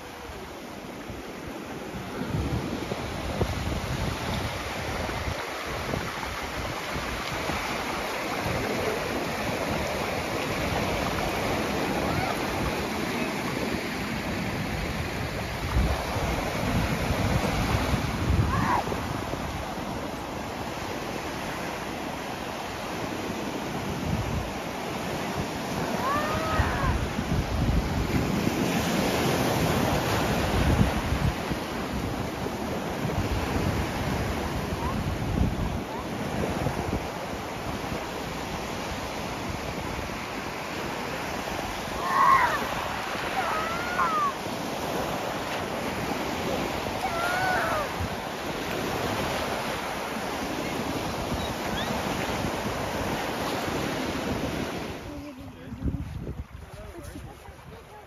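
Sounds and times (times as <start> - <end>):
wind buffeting microphone: 0.0 - 22.1, 22.8 - 58.0
waves on a pebble shore: 0.0 - 58.0.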